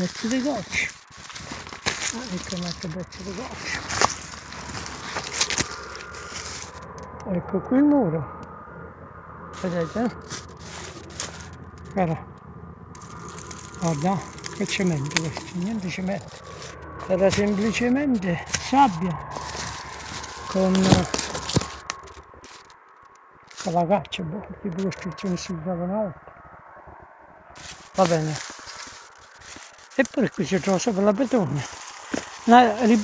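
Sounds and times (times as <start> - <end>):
footsteps crunching dry leaves: 0.0 - 7.0, 9.6 - 12.2, 13.0 - 22.8, 23.5 - 24.1, 24.7 - 25.6, 27.6 - 33.0.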